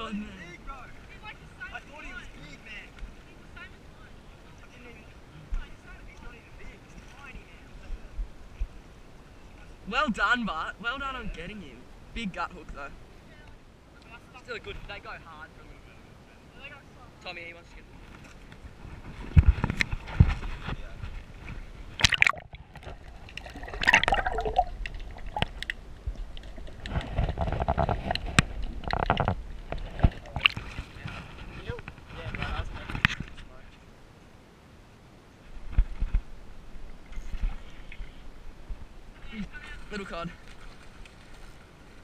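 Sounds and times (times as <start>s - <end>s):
water sloshing and gurgling: 18.1s - 31.8s, 35.6s - 42.0s
muffled bubbly underwater noise: 22.0s - 27.9s.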